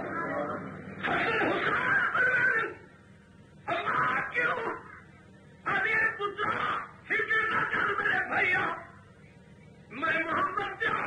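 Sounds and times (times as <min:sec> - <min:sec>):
man preaching: 0:00.0 - 0:02.9, 0:03.6 - 0:09.1, 0:09.9 - 0:11.0.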